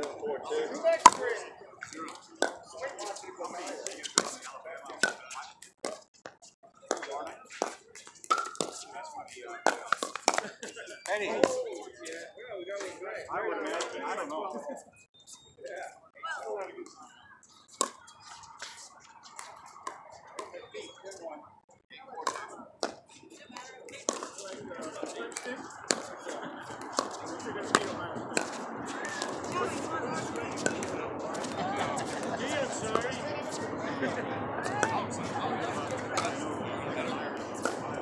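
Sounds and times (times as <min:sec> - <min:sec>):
people chatting: 0:00.0 - 0:05.9, 0:06.7 - 0:15.0, 0:15.6 - 0:38.0
paddles hitting plastic ball: 0:01.0 - 0:02.6, 0:06.9 - 0:08.9, 0:09.6 - 0:11.6, 0:17.8 - 0:20.6, 0:22.2 - 0:32.3, 0:35.8 - 0:36.4, 0:37.4 - 0:38.0.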